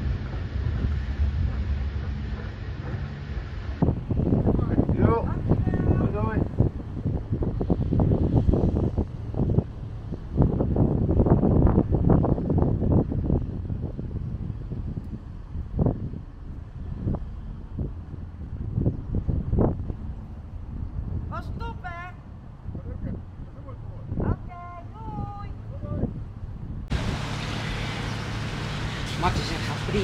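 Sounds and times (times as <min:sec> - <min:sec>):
motor boat running: 0:00.0 - 0:11.1, 0:26.9 - 0:30.0
wind buffeting microphone: 0:00.0 - 0:30.0.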